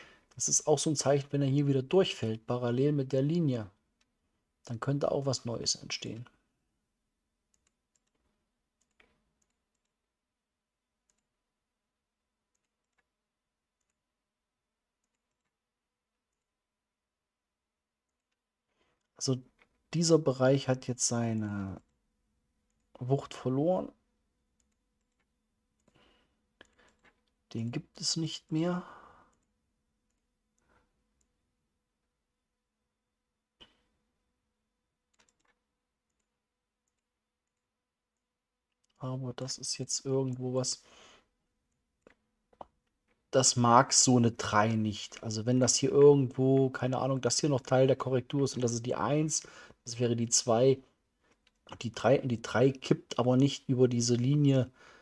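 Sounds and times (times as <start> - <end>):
computer mouse clicks: 7.5 - 10.0, 11.0 - 11.3, 12.5 - 13.1, 13.8 - 14.0, 15.0 - 15.6, 24.6 - 26.0, 26.6 - 27.4, 29.3 - 31.4, 35.1 - 37.6.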